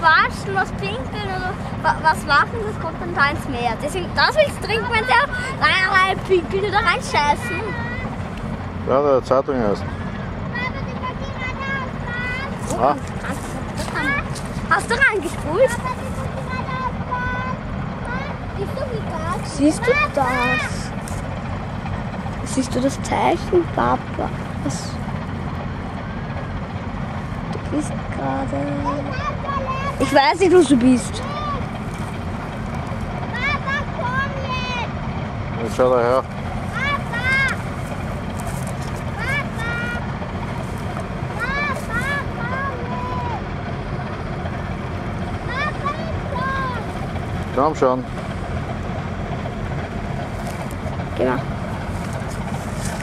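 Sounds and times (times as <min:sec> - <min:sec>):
ship diesel engine droning: 0:00.0 - 0:53.0.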